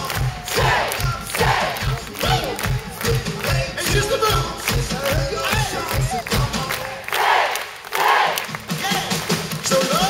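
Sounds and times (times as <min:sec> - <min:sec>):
bass drum beat: 0:00.0 - 0:06.8
live pop-rock band music: 0:00.0 - 0:06.8, 0:08.6 - 0:10.0
crowd cheering: 0:00.0 - 0:10.0
voices shouting: 0:07.1 - 0:08.4.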